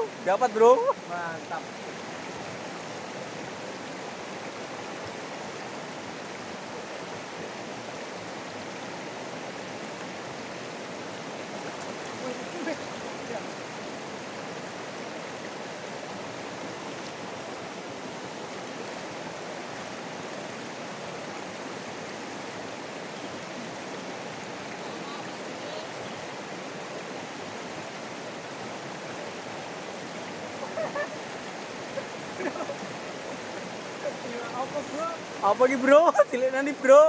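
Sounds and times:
river rushing over rocks: 0.0 - 37.0.

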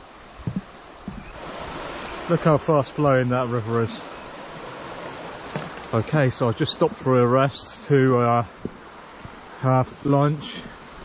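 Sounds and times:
fast deep water rushing: 0.0 - 11.0
soft thumps: 0.4 - 1.2, 5.5 - 5.9.

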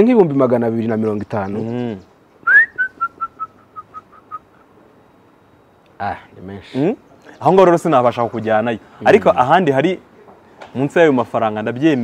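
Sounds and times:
man whistling short high notes: 2.4 - 4.5.

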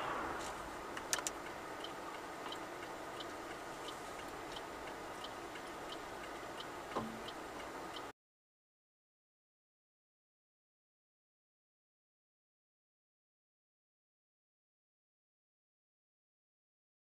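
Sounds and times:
low cabin noise: 0.0 - 8.1
car indicator relay clicking: 0.9 - 8.1.

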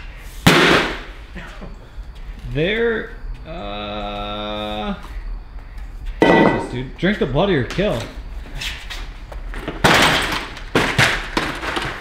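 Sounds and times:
barbell thudding down: 6.2 - 6.8.

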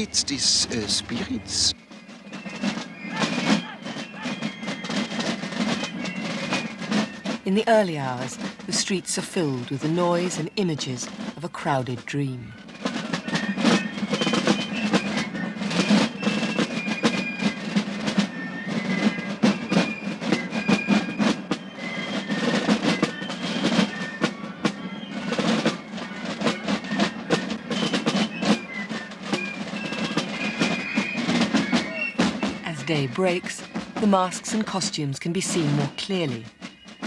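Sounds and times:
fast snare drumming: 0.0 - 1.8, 12.7 - 36.6
high fife notes: 0.0 - 1.8.

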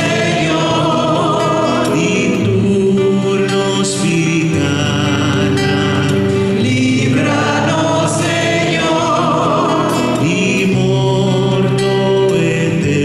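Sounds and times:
acoustic-electric guitar: 0.0 - 13.0
man and woman singing: 0.0 - 13.0.

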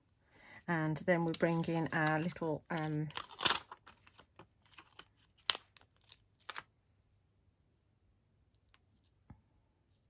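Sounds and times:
plastic sheet crinkling: 1.2 - 6.7.

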